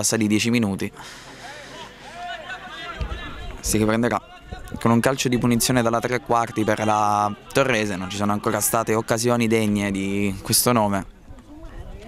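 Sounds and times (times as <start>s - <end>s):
distant people calling and shouting: 0.9s - 12.0s
faint murmur of voices: 0.9s - 12.0s.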